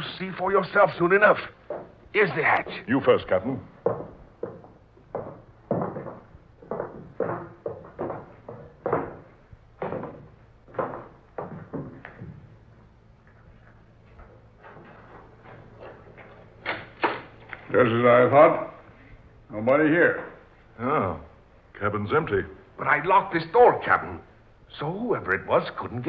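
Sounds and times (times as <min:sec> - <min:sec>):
footsteps on wooden steps: 0:01.6 - 0:17.6.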